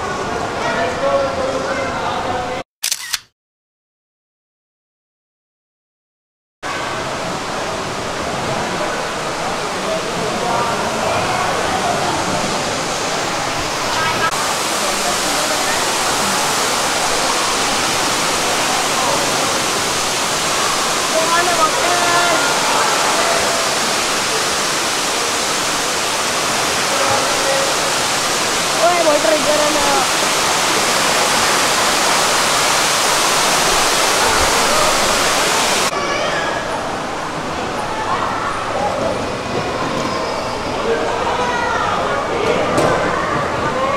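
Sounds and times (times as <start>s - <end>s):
indoor waterfall rushing: 6.7s - 43.9s.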